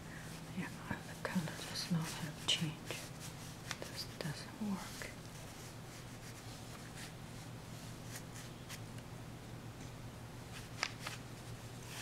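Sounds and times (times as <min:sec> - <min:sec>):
low steady hum: 0:00.0 - 0:12.0
person whispering: 0:03.8 - 0:05.2.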